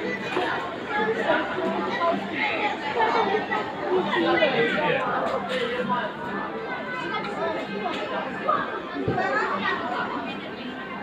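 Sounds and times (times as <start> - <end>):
background chatter of voices: 0.0 - 11.0.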